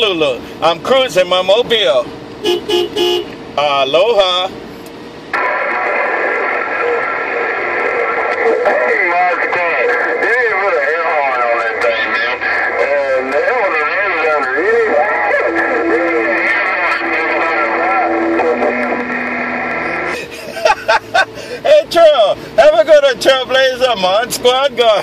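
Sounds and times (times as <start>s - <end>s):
garbled radio voices: 5.3s - 25.0s
whistling radio carrier tones: 5.4s - 20.1s
lower steady tone: 15.4s - 20.2s.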